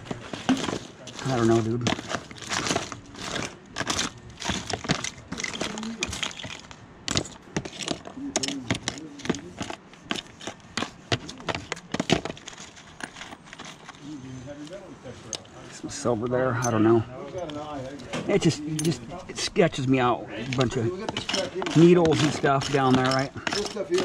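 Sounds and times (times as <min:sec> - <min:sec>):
small objects rattling in tote: 0:00.0 - 0:14.2, 0:20.5 - 0:24.0.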